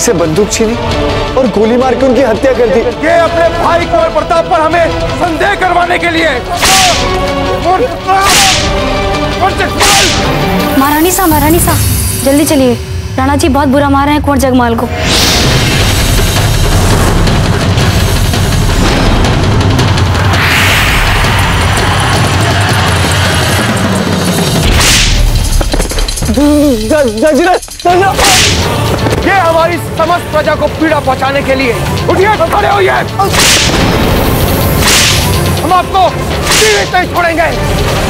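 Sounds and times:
background music: 0:00.0 - 0:38.0
deep rumble: 0:11.4 - 0:27.3
whip lashes swishing: 0:28.2 - 0:28.6, 0:33.3 - 0:33.8, 0:34.8 - 0:35.3.

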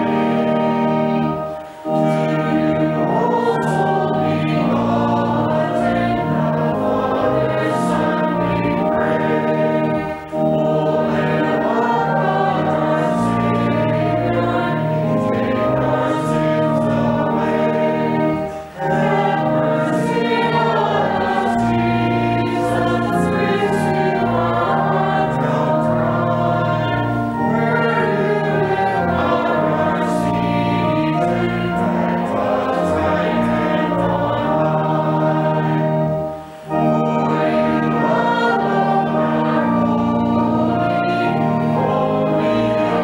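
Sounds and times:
congregation singing a hymn: 0:00.0 - 0:43.0
organ: 0:00.0 - 0:43.0.

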